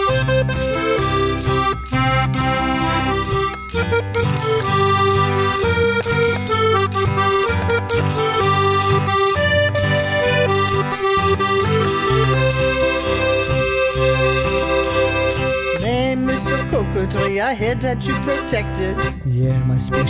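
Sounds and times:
triangle struck in rhythm: 0.0 - 16.8
accordion melody: 0.0 - 20.0
bass line: 0.0 - 20.0.

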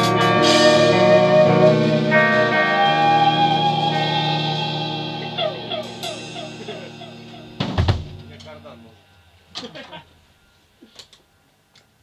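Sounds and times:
electric guitar chord ringing: 0.0 - 9.3
cymbal wash: 0.0 - 9.4
loud thump: 7.6 - 8.2.

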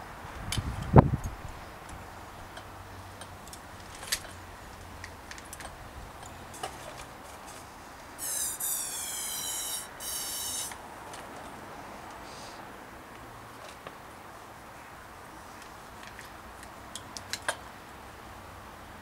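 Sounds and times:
clicks and knocks of bicycle parts: 0.4 - 7.7, 15.6 - 17.7
rubber grip squeaking on handlebar: 8.2 - 10.8.

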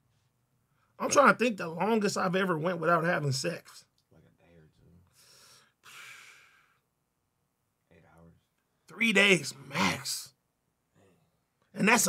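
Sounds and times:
man's breathy sigh: 5.2 - 6.8.

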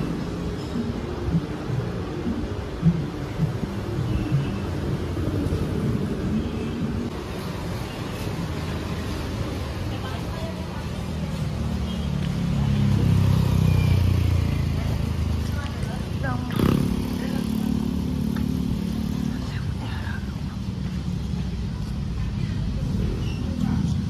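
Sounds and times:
vehicle engine passing: 12.3 - 19.7.

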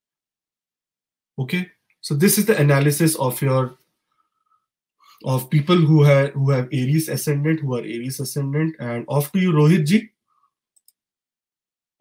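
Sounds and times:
man's voice: 1.4 - 3.7, 5.2 - 10.1.

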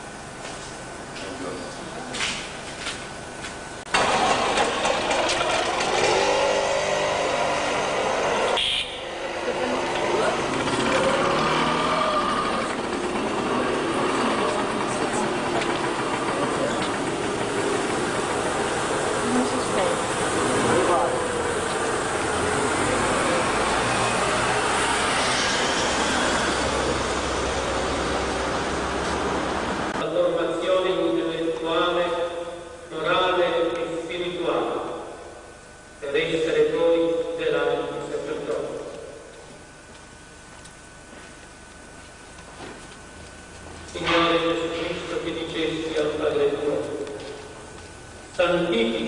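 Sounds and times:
engine revving up: 3.9 - 30.0
vehicle engines running: 3.9 - 30.0
people talking: 9.4 - 11.3, 13.4 - 17.0, 19.2 - 21.4, 43.9 - 47.2, 48.4 - 49.0.

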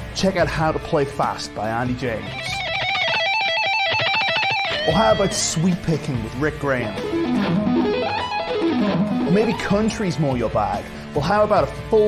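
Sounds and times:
electric guitar fast picked run: 2.4 - 5.6, 7.0 - 9.6.

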